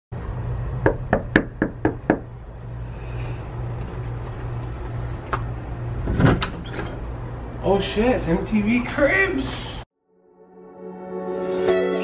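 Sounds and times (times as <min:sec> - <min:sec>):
knuckles knocking on a door: 0:00.8 - 0:02.3.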